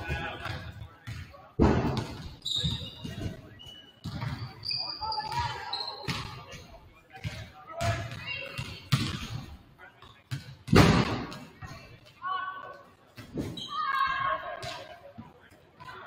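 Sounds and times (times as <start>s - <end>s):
voices in background: 0.0s - 16.0s.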